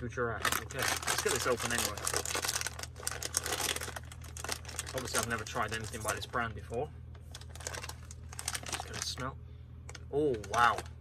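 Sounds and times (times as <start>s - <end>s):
snack packet crinkling: 0.4s - 6.5s, 7.2s - 9.2s, 9.9s - 11.0s.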